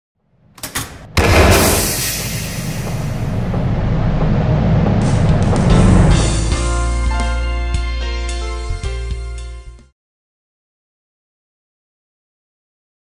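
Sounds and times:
quick percussive hits: 1.2 - 4.3
loud boom with low rumble: 1.2 - 6.7.

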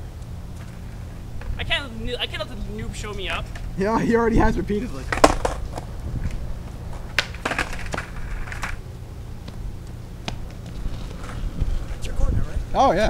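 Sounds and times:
steady low rumble: 0.0 - 13.0
skateboard clacks on concrete: 5.1 - 5.9, 6.9 - 8.8, 10.2 - 11.5.

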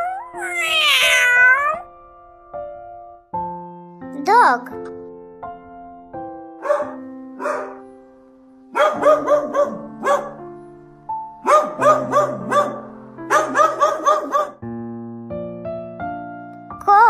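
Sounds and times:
piano music: 0.0 - 17.0
dog barking high-pitched: 6.6 - 7.8, 8.8 - 10.4, 11.4 - 14.6.

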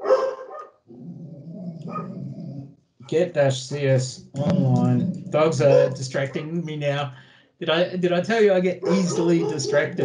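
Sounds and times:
dogs barking and growling: 0.0 - 2.7, 4.4 - 6.6, 8.8 - 10.0.

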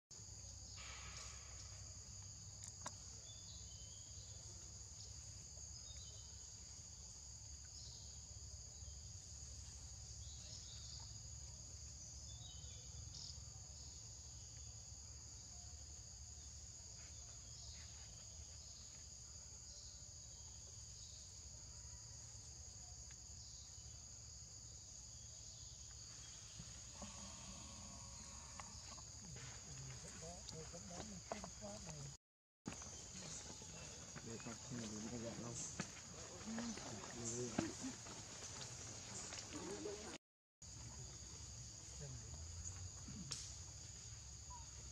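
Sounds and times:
faint insect chirps: 0.1 - 44.9
high trilling insects: 0.2 - 44.9.

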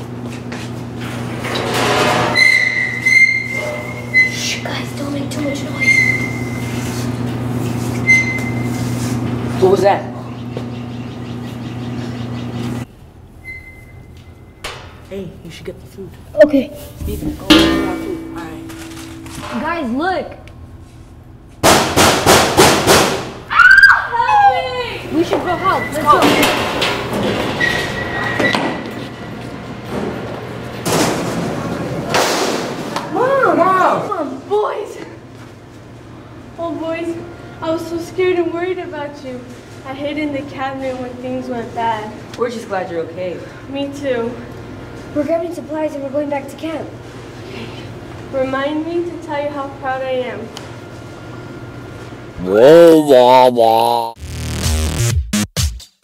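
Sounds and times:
low hum: 16.8 - 21.6
loud bangs: 21.6 - 23.4.

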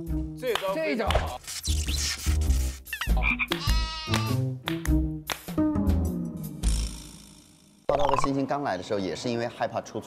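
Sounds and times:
comic frog croaking: 2.9 - 4.4, 7.9 - 8.3.

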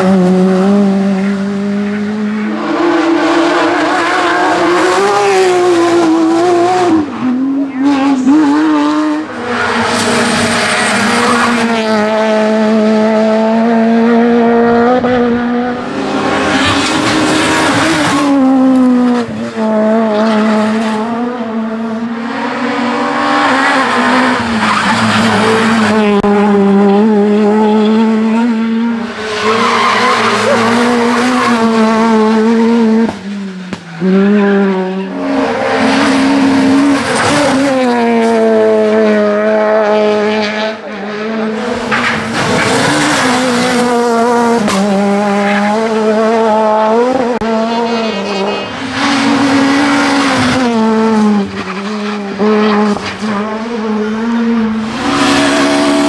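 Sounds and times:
rally cars revving past: 0.0 - 56.0.

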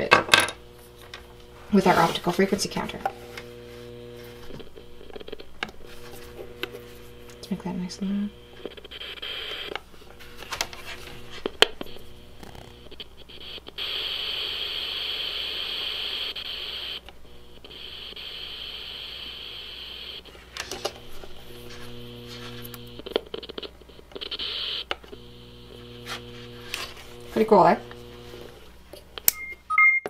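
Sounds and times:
low buzz with overtones: 0.0 - 23.2, 24.8 - 28.7.

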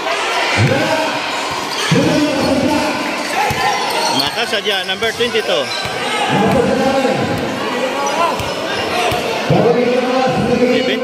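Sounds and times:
crowd noise: 0.0 - 11.0
basketball bouncing on hard court: 5.1 - 7.5.

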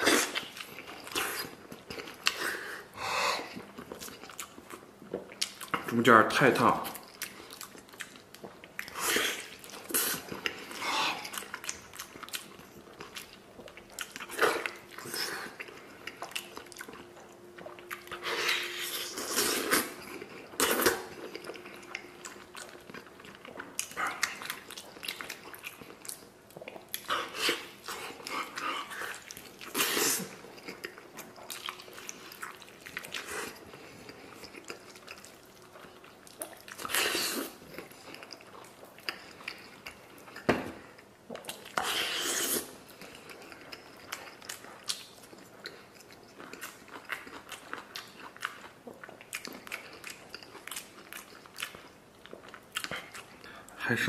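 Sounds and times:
person chewing meat: 0.0 - 6.0, 6.6 - 53.8.

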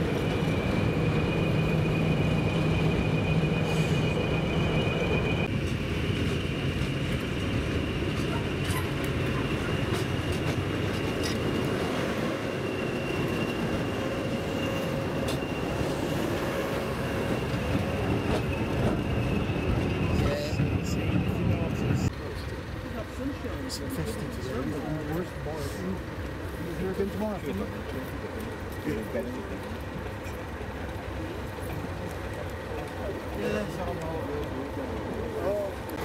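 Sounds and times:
constant high whistle: 0.0 - 22.1
diesel locomotive engine rumble: 0.0 - 36.0.

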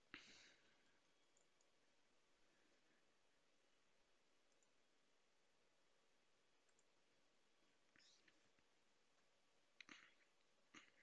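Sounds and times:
computer mouse click: 4.5 - 4.8, 6.6 - 6.9.

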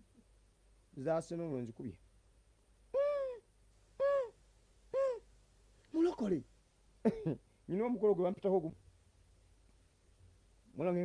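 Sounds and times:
high voice-like calls: 2.9 - 5.3.

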